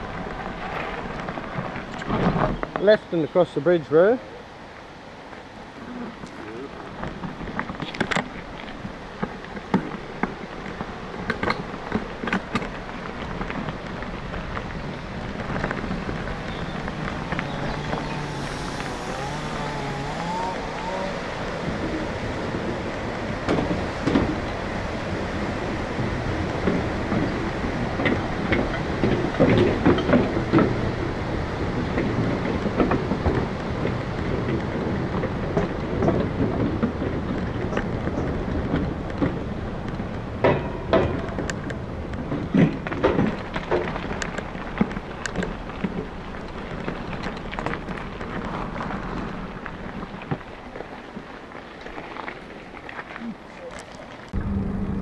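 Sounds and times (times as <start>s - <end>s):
bicycle tyres on gravel: 0.0s - 55.0s.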